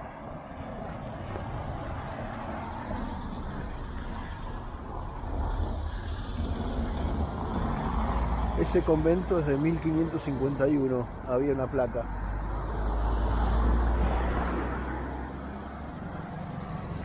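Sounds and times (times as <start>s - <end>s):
car driving on road: 0.0s - 17.0s.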